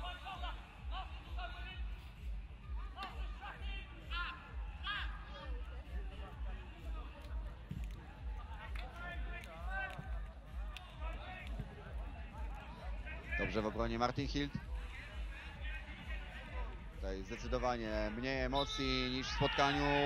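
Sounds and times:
players shouting: 0:00.0 - 0:20.0.

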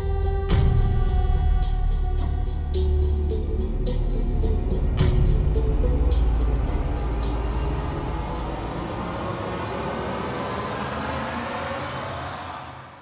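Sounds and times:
dramatic score drone: 0:00.0 - 0:13.0.

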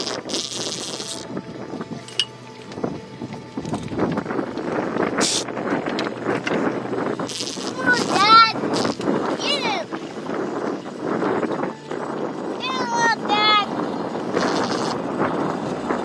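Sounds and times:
fishing reel buzzing: 0:00.0 - 0:02.7, 0:03.4 - 0:12.9, 0:13.6 - 0:16.0.

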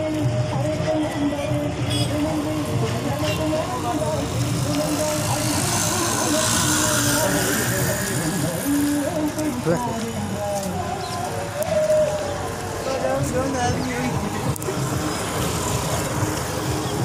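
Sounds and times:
passing traffic: 0:00.0 - 0:17.0
vehicle passing close by: 0:03.5 - 0:09.4.

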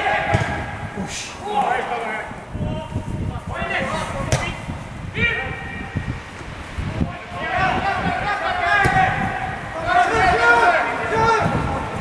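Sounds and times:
players shouting: 0:00.0 - 0:06.2, 0:06.8 - 0:12.0
ball kick: 0:00.2 - 0:00.8, 0:04.3 - 0:04.6, 0:08.8 - 0:09.2.

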